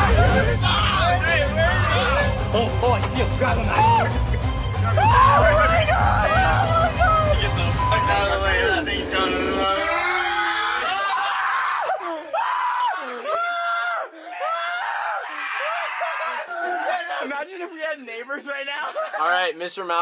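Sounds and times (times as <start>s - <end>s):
background music with low beat: 0.0s - 10.0s
young men shrieking and yelping: 0.0s - 19.5s
laughter: 18.6s - 19.5s.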